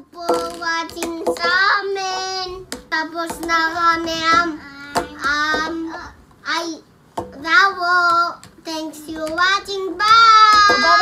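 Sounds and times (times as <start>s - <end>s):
young child singing: 0.0s - 11.0s.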